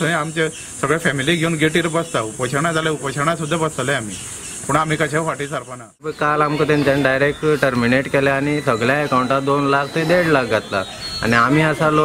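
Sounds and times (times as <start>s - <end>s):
men speaking: 0.0s - 12.0s
steady high hiss: 0.0s - 12.0s.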